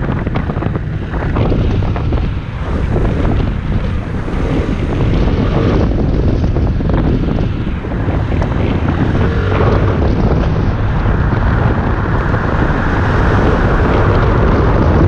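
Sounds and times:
road noise: 0.0s - 15.0s
scooter engine: 0.0s - 15.0s
wind rumbling on microphone: 0.0s - 15.0s.

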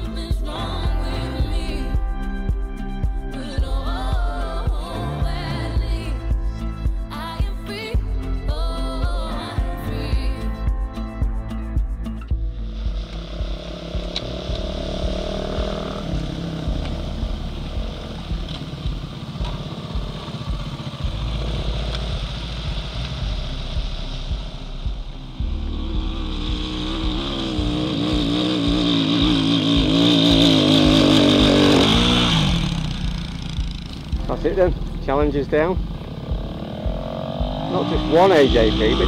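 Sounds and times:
motorcycle engines revving: 12.6s - 39.0s.

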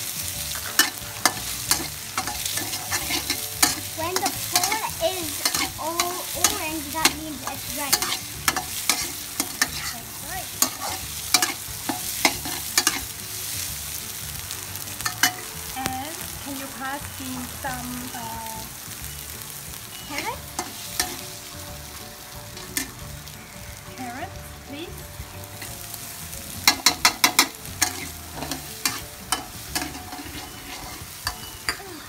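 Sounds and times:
spatula scraping a wok: 0.0s - 15.6s, 20.1s - 21.4s, 25.5s - 32.0s
food sizzling in oil: 0.0s - 32.0s
spatula clicking on pan: 0.7s - 9.9s, 10.6s - 13.1s, 26.6s - 31.8s.

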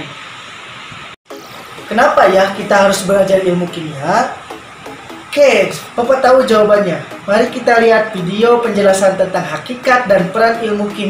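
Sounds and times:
steady background hiss: 0.0s - 11.0s
man's voice: 5.3s - 11.0s.

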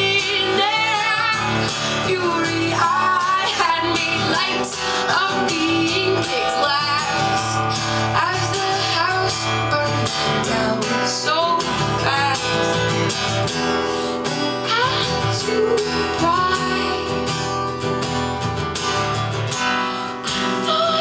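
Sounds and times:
woman singing: 0.0s - 18.0s, 20.2s - 21.0s
acoustic guitar strummed: 0.0s - 21.0s.

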